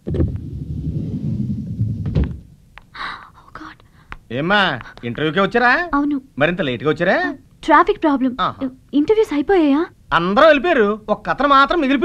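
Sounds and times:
low rumbling thud: 0.0s - 2.6s.

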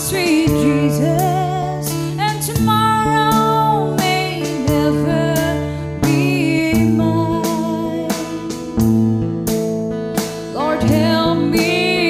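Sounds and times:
person singing: 0.0s - 8.8s, 10.5s - 12.0s
electric bass low notes: 0.0s - 12.0s
live band music: 1.1s - 12.0s.

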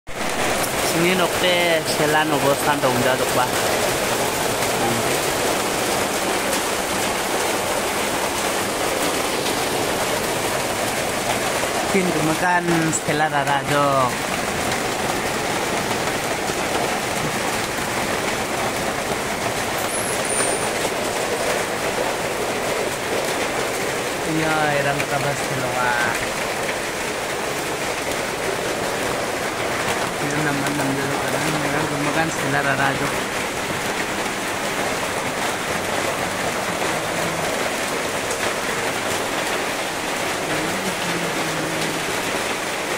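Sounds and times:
rain on a metal roof: 0.1s - 42.9s.

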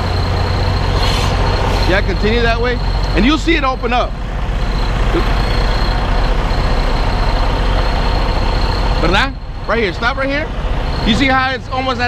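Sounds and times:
diesel truck engine rumbling: 0.0s - 12.0s.

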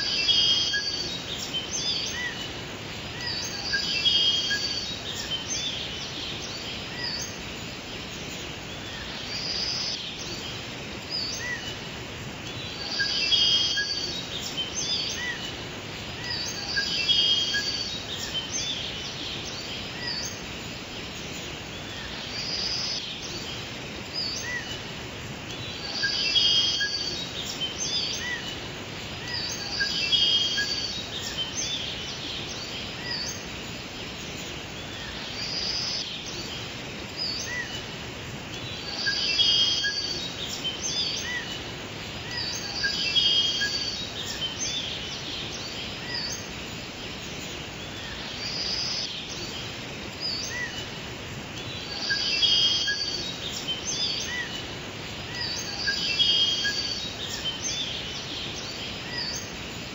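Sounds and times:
background hiss: 0.0s - 59.9s
birds chirping: 0.0s - 59.9s.

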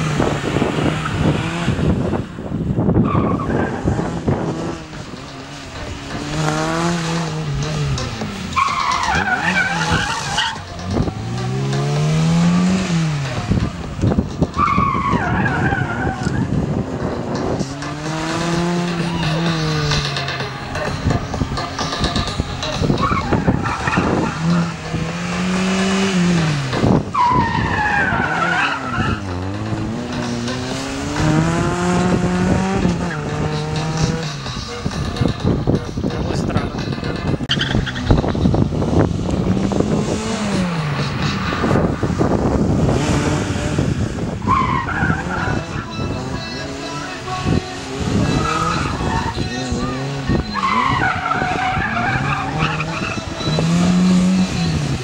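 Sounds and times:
car engine revving: 0.0s - 55.0s
tyres squealing: 3.0s - 13.6s, 14.3s - 16.6s, 17.3s - 35.3s, 44.4s - 55.0s.

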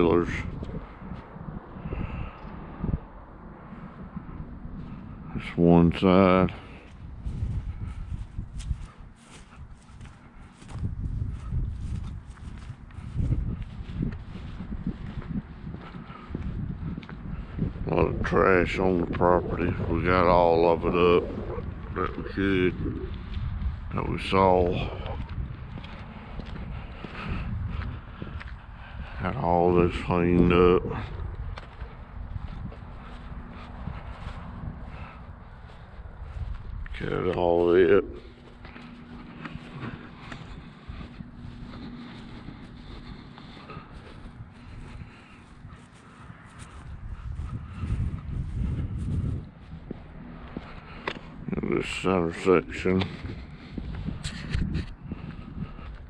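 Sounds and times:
low rumble: 0.0s - 30.0s, 30.8s - 56.0s
faint steady hum: 0.0s - 56.0s
footsteps on grass and asphalt: 0.0s - 56.0s.

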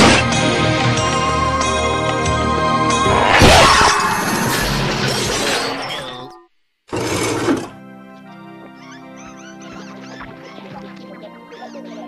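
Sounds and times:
music: 0.0s - 12.0s
loud crash smash: 3.0s - 5.9s
debris clattering: 3.4s - 6.3s.

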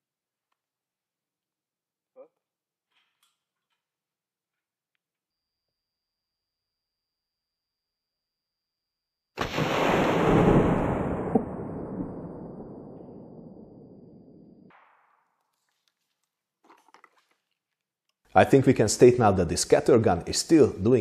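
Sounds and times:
slowed shotgun shot deep boom: 9.4s - 15.2s.

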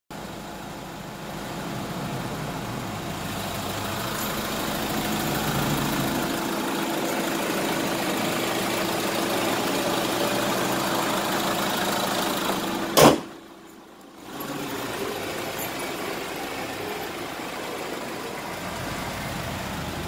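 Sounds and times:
diesel van engine idling: 0.1s - 20.0s.

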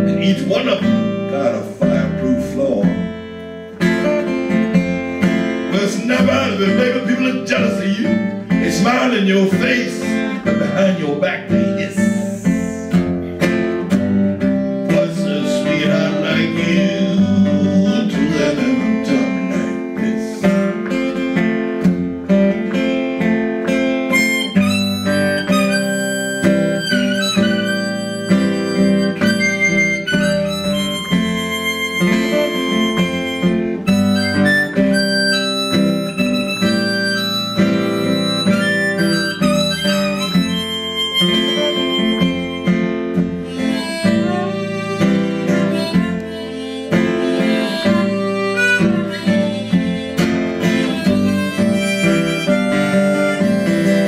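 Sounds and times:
acoustic guitar accompaniment: 0.0s - 54.0s
blues harmonica: 0.0s - 54.0s.

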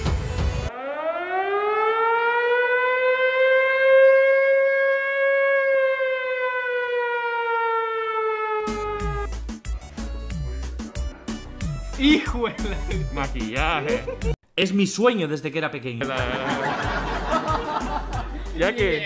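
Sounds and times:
air raid siren wailing: 0.7s - 9.3s
music beat: 8.7s - 14.4s, 16.0s - 19.0s.

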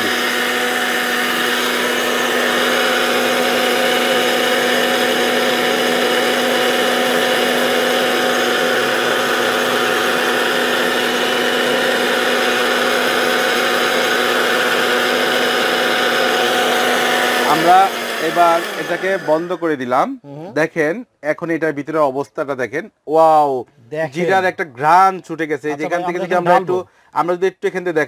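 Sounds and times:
mixer grinder dry-grinding seeds: 0.0s - 19.7s.

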